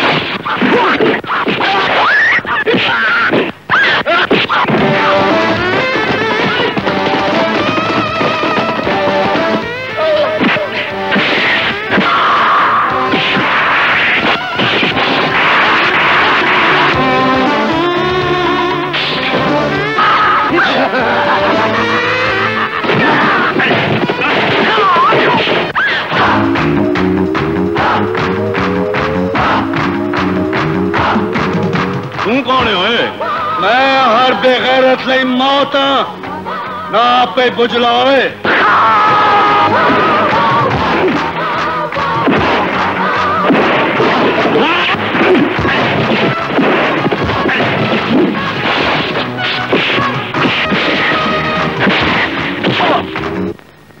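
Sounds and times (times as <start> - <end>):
background music: 4.6 - 53.6
loud impact sound effects: 22.8 - 32.9, 42.2 - 53.5.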